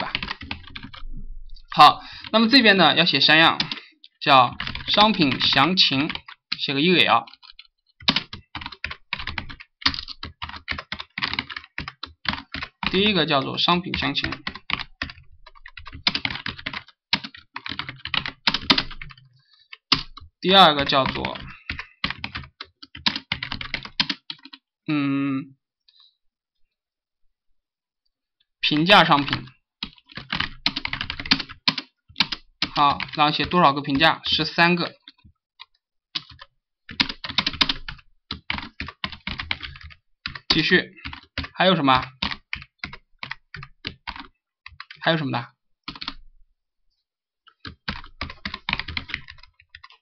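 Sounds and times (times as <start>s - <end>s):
computer keyboard typing: 0.0s - 1.1s, 3.5s - 3.8s, 4.5s - 6.6s, 7.2s - 24.6s, 28.8s - 45.0s, 45.8s - 46.2s, 47.5s - 50.0s.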